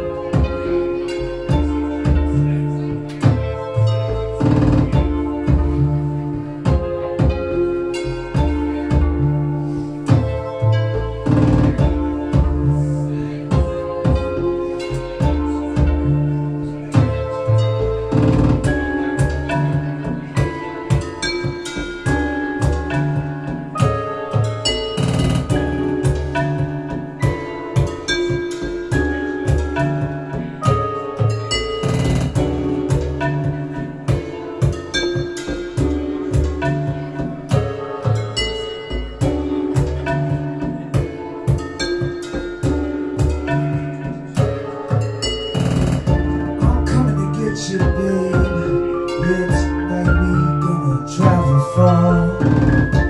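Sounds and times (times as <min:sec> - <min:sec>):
low bass notes: 0:00.0 - 0:53.0
sustained keyboard chords: 0:00.0 - 0:53.0
drum beat: 0:01.5 - 0:03.6, 0:04.4 - 0:06.0, 0:06.6 - 0:07.6, 0:08.3 - 0:10.5, 0:11.2 - 0:12.8, 0:13.4 - 0:16.3, 0:18.1 - 0:53.0.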